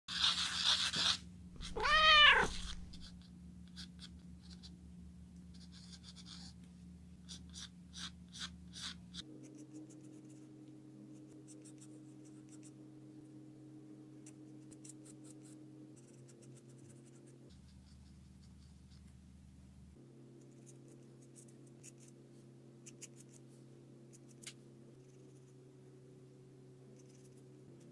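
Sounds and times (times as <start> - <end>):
pencil scratching on paper: 0.1 - 1.2, 5.6 - 6.5, 27.0 - 27.8
low steady hum: 1.3 - 3.6
cat meowing: 1.6 - 3.1.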